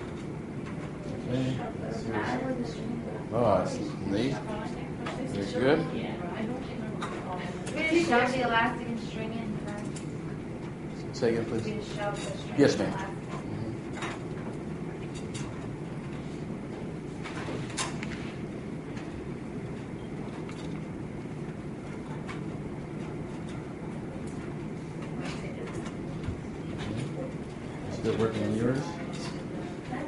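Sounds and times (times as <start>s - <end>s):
low room rumble: 0.0s - 30.0s.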